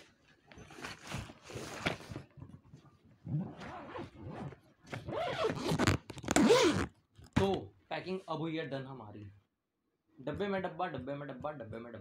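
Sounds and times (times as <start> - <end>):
suitcase zipper being pulled: 3.2 - 6.9.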